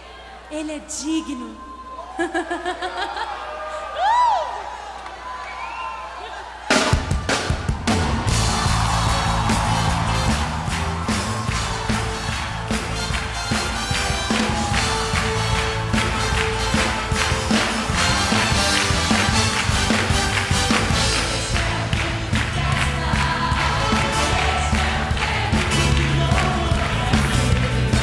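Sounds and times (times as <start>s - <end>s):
drum kit and cymbals beat: 6.7s - 28.0s
trumpet section playing: 7.9s - 22.3s.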